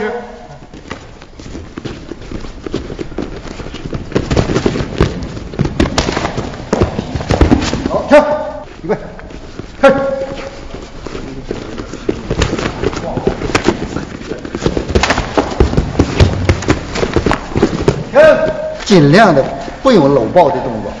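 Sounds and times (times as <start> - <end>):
scuffling: 0.0 - 21.0
thuds and smacks of blows: 3.9 - 8.0, 14.6 - 18.6
short sharp shouts: 18.1 - 18.8.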